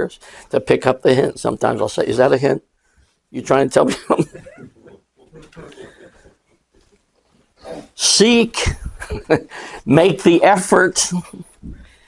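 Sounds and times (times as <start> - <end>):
small audience laughing: 4.1 - 6.4.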